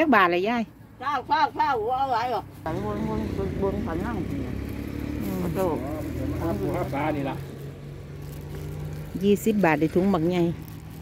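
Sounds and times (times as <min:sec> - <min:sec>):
people talking: 0:00.0 - 0:04.5, 0:09.2 - 0:10.6
vehicle engine humming: 0:00.0 - 0:11.0.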